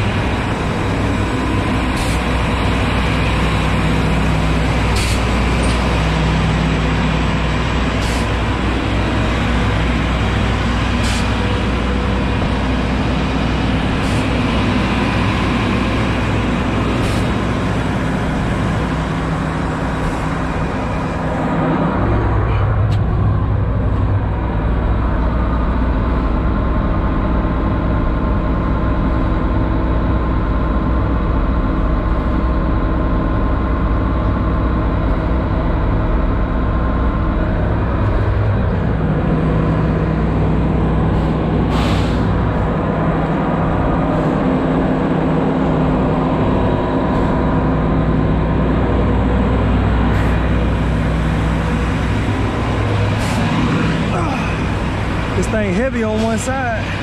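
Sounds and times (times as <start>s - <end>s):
diesel engine running under load: 0.0s - 57.0s.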